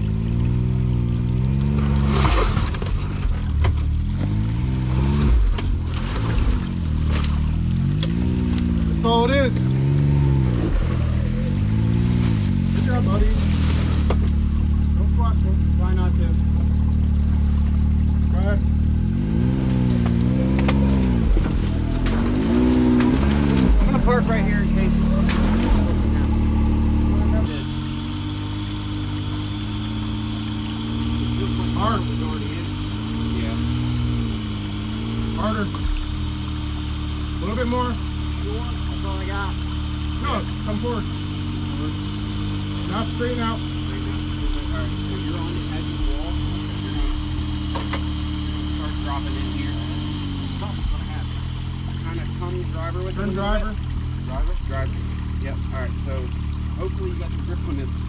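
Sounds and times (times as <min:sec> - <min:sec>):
distant vehicle engine: 0:00.0 - 0:58.0
off-road vehicle engine revving: 0:00.0 - 0:58.0.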